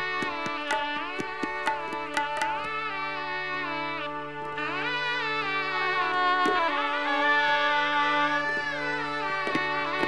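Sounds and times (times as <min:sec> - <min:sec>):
shehnai melody: 0:00.6 - 0:10.0.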